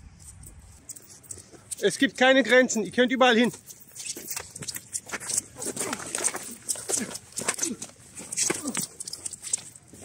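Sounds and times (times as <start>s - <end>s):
fighters grunting: 5.7s - 9.0s.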